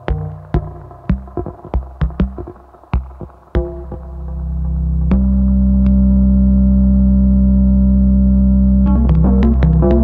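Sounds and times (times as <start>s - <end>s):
deep synthesizer bass drone: 0.0s - 10.0s.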